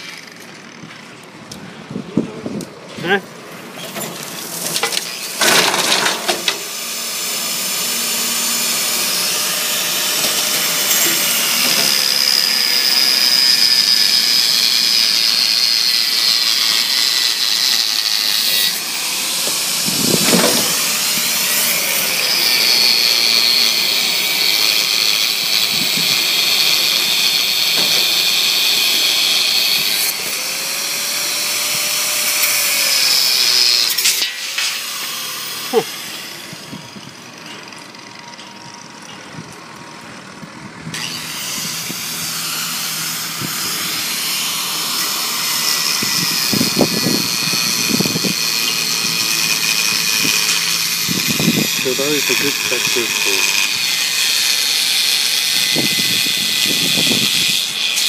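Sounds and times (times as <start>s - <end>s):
rotary mower cutting grass: 0.0s - 1.3s, 3.0s - 58.0s.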